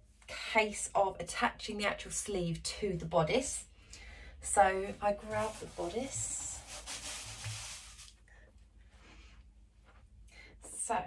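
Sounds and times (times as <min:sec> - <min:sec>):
faint cloth rustling: 0:04.6 - 0:10.2.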